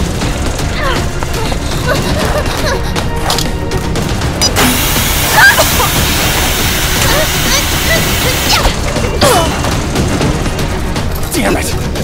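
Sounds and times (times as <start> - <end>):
soundtrack music: 0.0 - 12.0.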